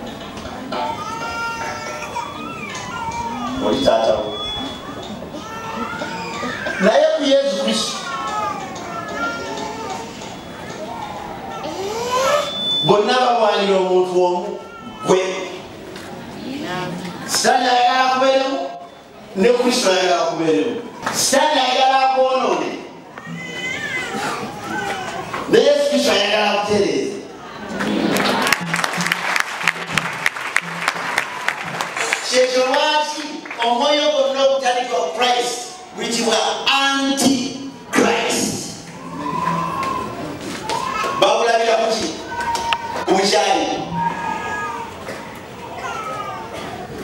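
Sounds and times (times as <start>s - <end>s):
man speaking over public address: 3.6s - 4.6s, 6.7s - 8.7s, 12.6s - 15.7s, 17.2s - 23.0s, 25.5s - 27.3s, 32.0s - 38.9s, 41.2s - 42.4s, 43.0s - 44.2s.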